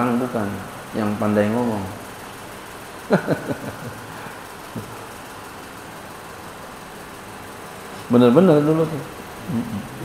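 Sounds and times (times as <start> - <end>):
steady background hum: 0.0 - 10.0
man laughing: 3.0 - 5.0, 9.5 - 10.0.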